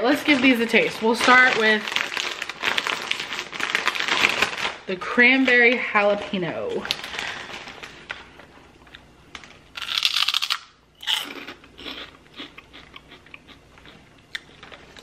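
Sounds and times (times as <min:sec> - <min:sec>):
crisp crunching of pork rind: 0:01.3 - 0:04.8, 0:08.9 - 0:15.0.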